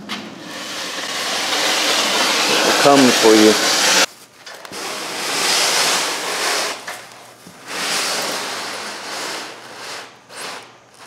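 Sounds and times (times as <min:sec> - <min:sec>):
rushing hiss: 0:00.4 - 0:04.1.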